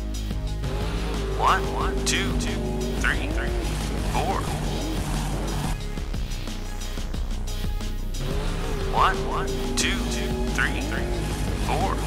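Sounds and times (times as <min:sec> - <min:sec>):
background music: 0:00.0 - 0:12.0
cartoon truck engine effect: 0:00.6 - 0:05.8, 0:08.2 - 0:12.0.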